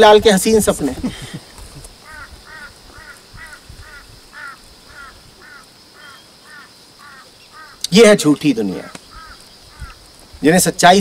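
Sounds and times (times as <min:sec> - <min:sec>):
bird calling: 0:00.8 - 0:10.4.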